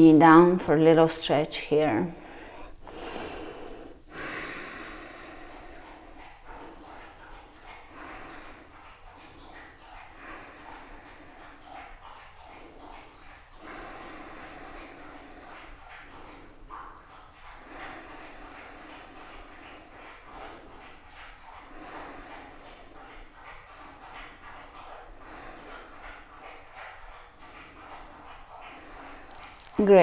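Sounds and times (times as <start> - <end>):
noisy breathing: 2.1 - 30.0.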